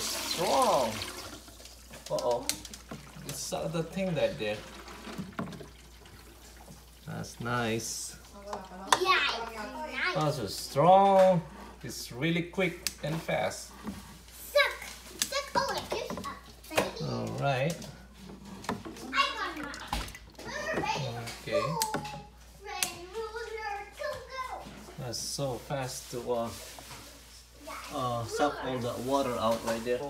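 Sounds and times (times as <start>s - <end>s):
water trickling from hose: 0.0s - 12.0s, 25.2s - 30.0s
child talking: 8.4s - 10.5s, 14.4s - 17.4s, 19.0s - 24.9s, 27.6s - 28.9s.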